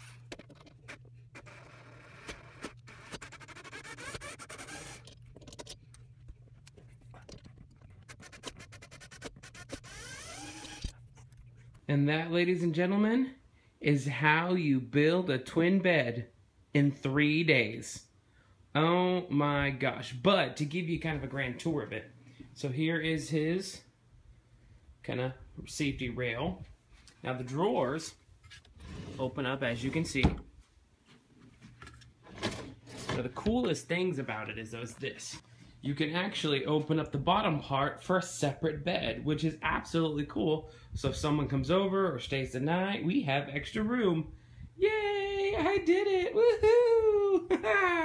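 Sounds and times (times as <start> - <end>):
buzzy screwdriver whir: 0.0 - 5.3, 8.0 - 11.0
drawer sliding scrape: 28.5 - 30.1, 32.2 - 33.4.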